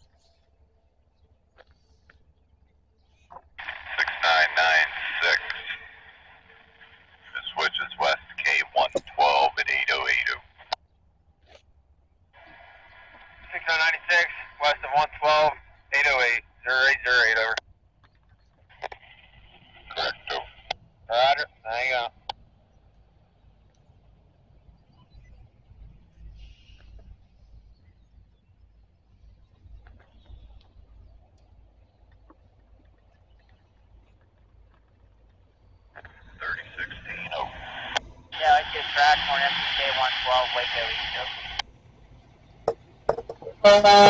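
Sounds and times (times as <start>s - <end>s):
faint bird chirps: 0.0s - 3.4s, 22.6s - 34.2s
radio squelch hiss: 3.2s - 10.7s, 12.4s - 17.6s, 18.8s - 22.2s, 36.0s - 41.6s
tinny radio speech: 3.3s - 10.8s, 12.4s - 17.6s, 19.7s - 22.3s, 36.0s - 41.6s.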